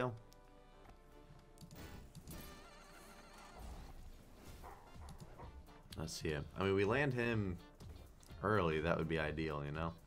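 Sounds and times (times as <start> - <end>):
game music: 0.0 - 10.0
slot machine sound effects: 1.7 - 4.1.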